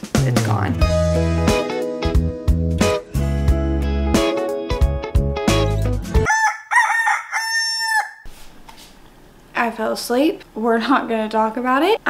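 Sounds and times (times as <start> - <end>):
background music: 0.0 - 6.3
rooster crowing: 6.3 - 8.3.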